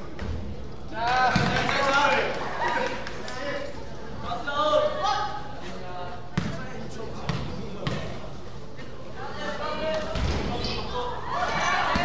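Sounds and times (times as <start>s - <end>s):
voices in a large gym: 0.0s - 12.0s.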